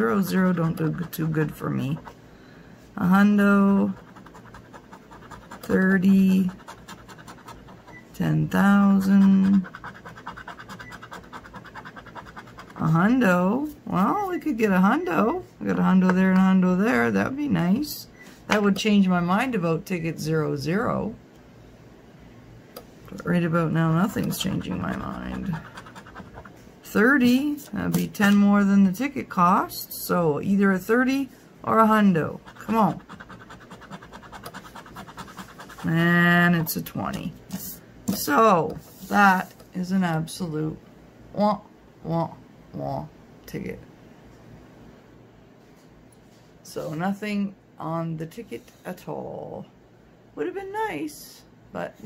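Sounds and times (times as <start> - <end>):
woman speaking: 0.0 - 2.1, 3.0 - 10.6, 12.6 - 21.2, 23.1 - 26.2, 26.8 - 43.9, 46.6 - 49.8, 50.4 - 52.0
coin scraping scratch card: 3.8 - 8.0, 8.9 - 12.9, 24.1 - 26.5, 32.4 - 35.9.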